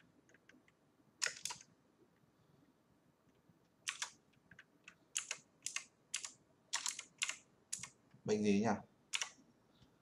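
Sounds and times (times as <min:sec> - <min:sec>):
keyboard typing: 0:00.2 - 0:01.7, 0:03.8 - 0:08.0, 0:09.1 - 0:09.4.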